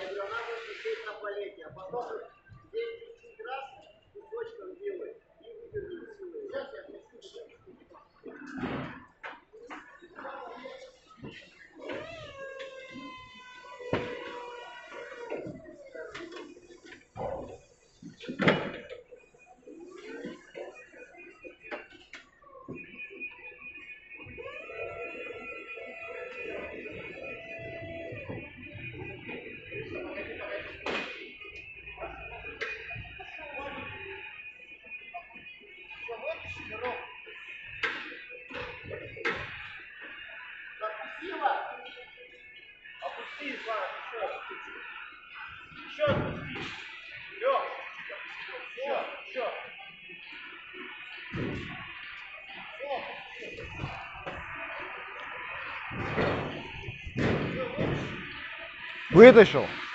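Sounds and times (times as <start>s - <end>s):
indistinct voices: 58.8s - 59.8s.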